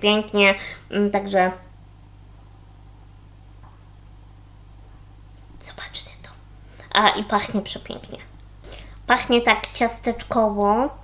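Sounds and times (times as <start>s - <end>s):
woman speaking: 0.0s - 1.7s, 5.6s - 8.4s, 9.1s - 11.0s.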